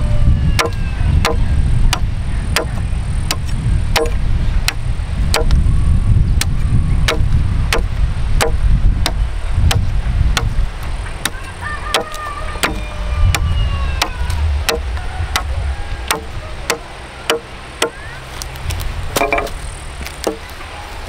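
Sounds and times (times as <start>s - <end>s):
steady low rumble: 0.0s - 21.0s
machete chopping wood: 0.6s - 5.6s, 6.4s - 10.6s, 11.2s - 13.4s, 16.1s - 18.0s, 19.1s - 20.5s.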